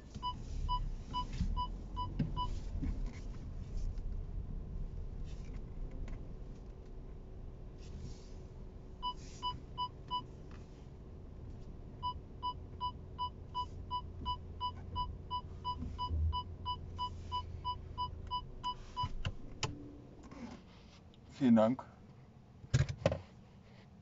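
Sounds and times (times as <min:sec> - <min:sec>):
parking sensor beeping: 0:00.2 - 0:02.6, 0:09.0 - 0:10.3, 0:12.0 - 0:19.3.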